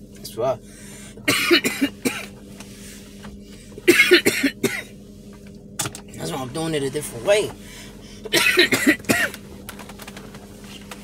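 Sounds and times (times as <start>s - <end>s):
man coughing: 1.2s - 2.4s, 3.8s - 5.0s, 8.2s - 9.4s.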